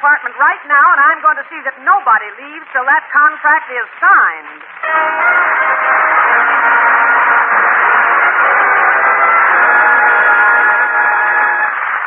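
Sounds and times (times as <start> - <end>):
orchestra playing held chords: 4.8 - 12.0.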